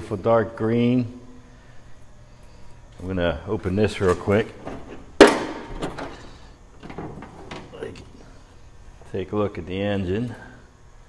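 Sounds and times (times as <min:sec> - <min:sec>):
metal hood knocks and clicks: 0:06.8 - 0:07.8.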